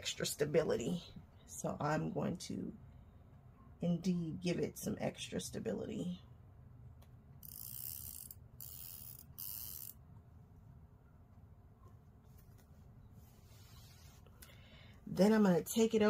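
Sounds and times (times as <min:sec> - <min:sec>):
faint low room hum: 0:00.0 - 0:16.0.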